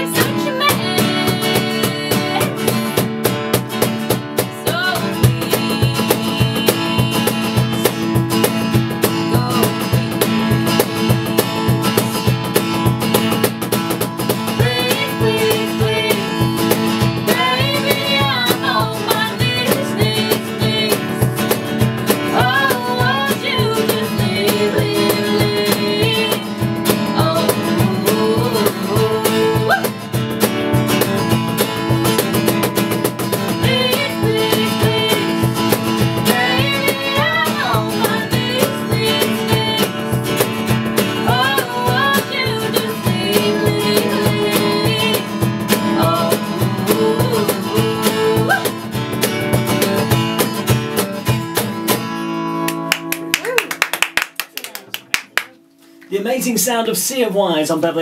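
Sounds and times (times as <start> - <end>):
acoustic guitar strumming: 0.0 - 53.4.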